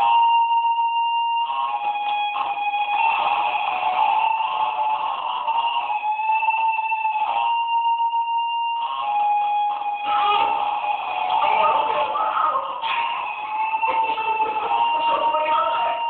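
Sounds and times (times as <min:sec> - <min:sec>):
experimental electronic noise music: 0:01.4 - 0:06.4, 0:08.8 - 0:16.0.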